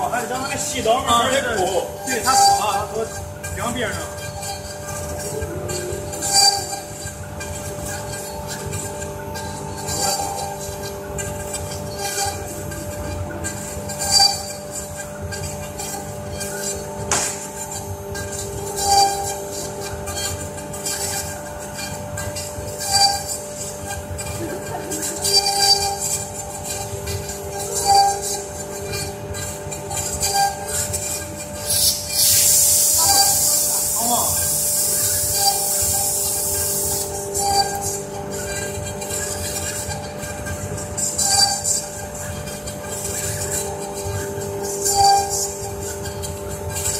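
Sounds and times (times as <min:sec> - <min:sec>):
router spindles carving wood: 0:00.0 - 0:46.9.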